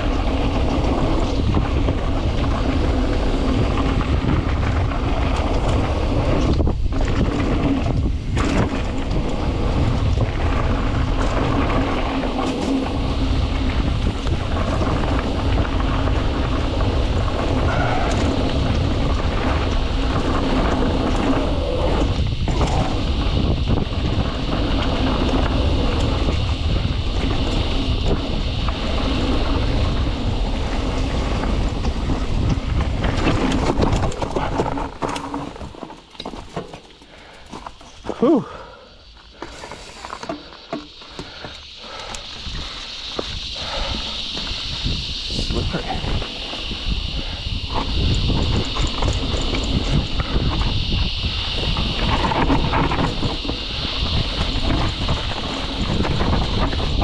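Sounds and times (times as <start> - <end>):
wind on microphone: 0.0 - 35.8, 37.2 - 57.0
bike tyres rolling over dirt: 0.0 - 57.0.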